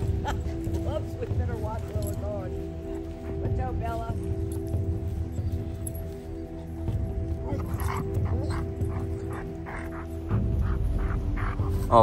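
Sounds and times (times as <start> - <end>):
background music sustained tones: 0.0 - 12.0
dogs yipping and whining: 7.4 - 12.0.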